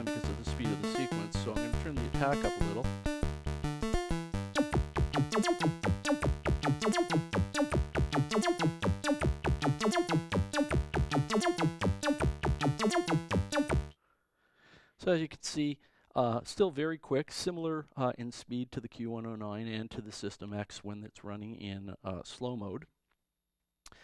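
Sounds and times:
synthesizer sequence: 0:02.4 - 0:13.9.

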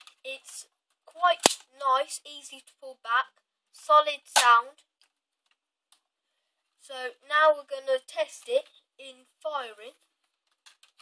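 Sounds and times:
toy blaster priming clack: 0:01.4 - 0:01.6.

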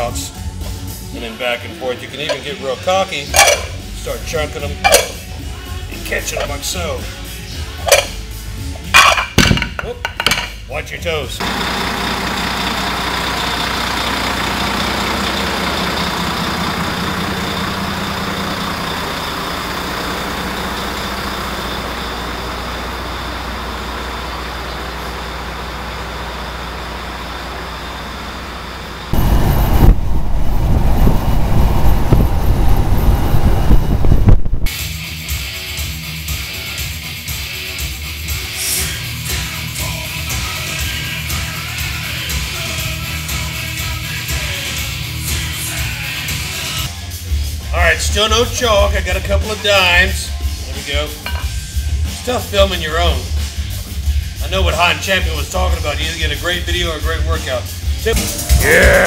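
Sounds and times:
music: 0:00.0 - 0:11.4, 0:34.7 - 0:59.0
truck diesel engine running: 0:11.4 - 0:34.7.

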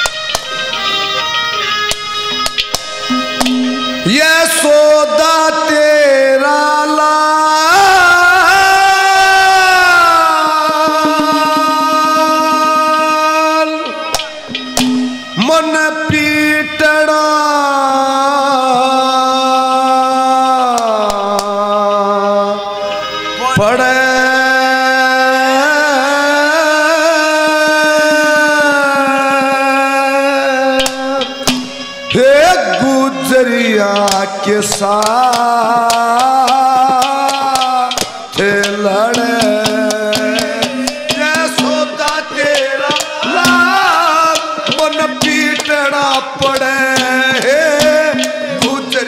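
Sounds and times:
sharp click: 0:01.9 - 0:03.6
fast drum strokes: 0:02.4 - 0:04.2, 0:13.8 - 0:15.5, 0:30.7 - 0:49.0
man singing long note: 0:04.0 - 0:14.2, 0:15.4 - 0:31.4, 0:32.1 - 0:49.0.

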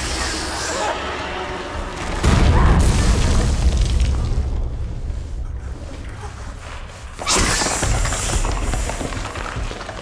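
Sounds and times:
dramatic music: 0:00.0 - 0:04.3.

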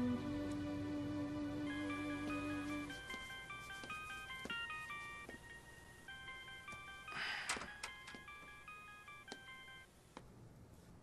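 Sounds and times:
phone ringtone melody: 0:01.6 - 0:09.9.

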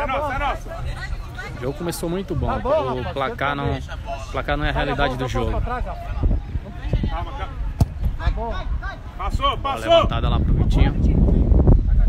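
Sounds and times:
men talking: 0:00.0 - 0:12.0
football kick thud: 0:07.7 - 0:08.2.

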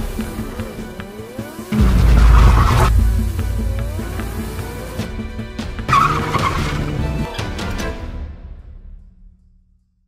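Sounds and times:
background music: 0:00.0 - 0:10.0
race car tyres squealing: 0:05.8 - 0:07.0.

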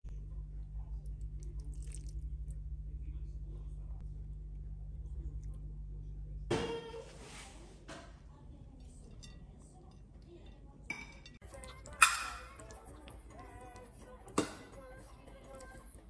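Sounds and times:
fork clinking on ceramic plate: 0:08.8 - 0:13.1.

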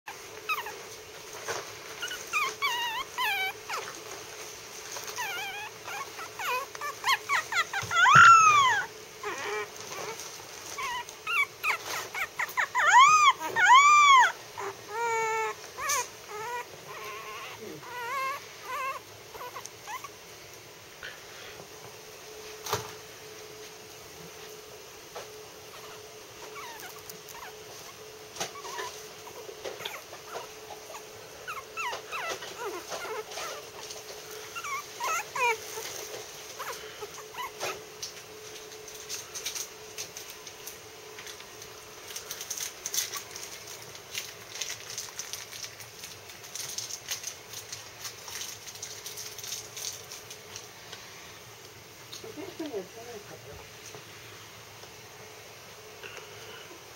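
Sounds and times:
puppy howling and whimpering: 0:00.1 - 0:01.0, 0:01.9 - 0:04.2, 0:04.9 - 0:20.2, 0:25.7 - 0:37.9
faint steady hum: 0:00.1 - 0:56.9.

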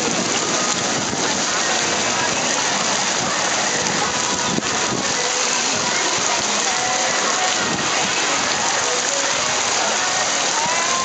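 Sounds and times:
water rushing and splashing: 0:00.0 - 0:11.0.

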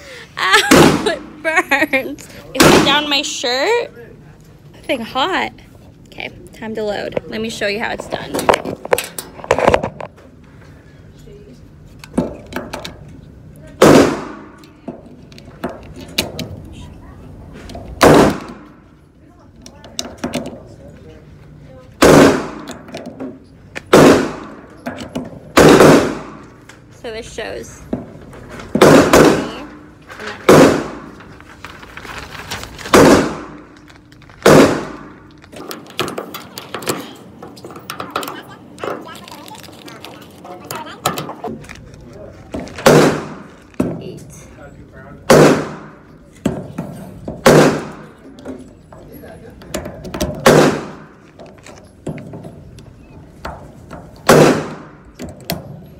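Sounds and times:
loud pistol shots: 0:00.7 - 0:01.0, 0:02.6 - 0:03.0, 0:13.8 - 0:14.6, 0:18.0 - 0:18.7, 0:22.0 - 0:22.7, 0:23.9 - 0:24.6, 0:25.5 - 0:26.4, 0:28.8 - 0:29.6, 0:30.5 - 0:31.1, 0:32.9 - 0:33.7, 0:34.4 - 0:35.2, 0:42.8 - 0:43.5, 0:45.3 - 0:46.0, 0:47.4 - 0:48.1, 0:50.4 - 0:51.1, 0:54.3 - 0:55.0
loud gunshots indoors: 0:02.6 - 0:03.0, 0:13.8 - 0:14.6, 0:18.0 - 0:18.8, 0:22.0 - 0:22.8, 0:23.9 - 0:24.7, 0:25.5 - 0:26.5, 0:28.8 - 0:29.8, 0:30.4 - 0:31.2, 0:32.9 - 0:33.7, 0:34.4 - 0:35.2, 0:42.8 - 0:43.5, 0:45.3 - 0:46.0, 0:47.4 - 0:48.1, 0:50.4 - 0:51.1, 0:54.2 - 0:55.0.

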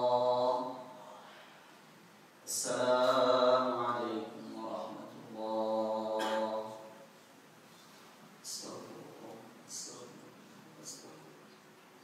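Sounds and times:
man chanting: 0:00.0 - 0:01.0, 0:02.5 - 0:07.1.

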